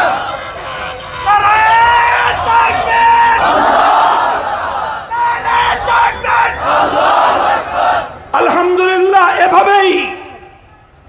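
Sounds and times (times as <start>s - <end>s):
crowd chanting: 0.0s - 8.3s.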